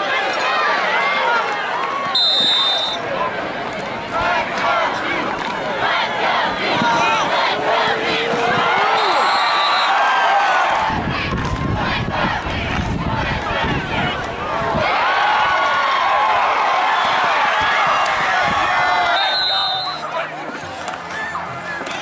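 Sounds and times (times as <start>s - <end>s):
crowd shouting and cheering: 0.0s - 22.0s
referee's whistle: 2.1s - 3.0s, 8.9s - 10.1s, 19.0s - 20.1s.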